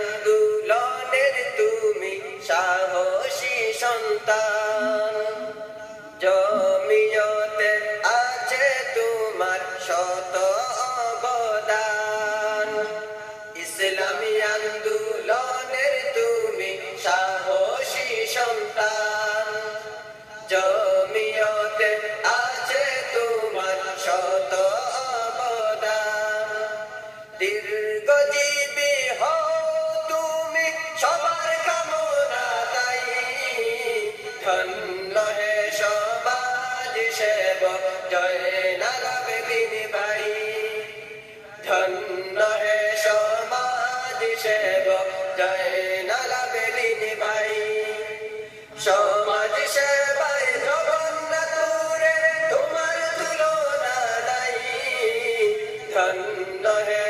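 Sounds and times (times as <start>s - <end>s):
man singing: 0.0s - 57.0s.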